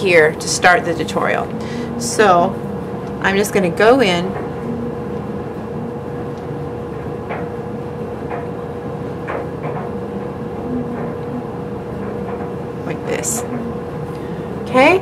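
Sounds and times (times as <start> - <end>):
background hum and hiss: 0.0 - 15.0
constant mid-pitched tone: 0.0 - 15.0.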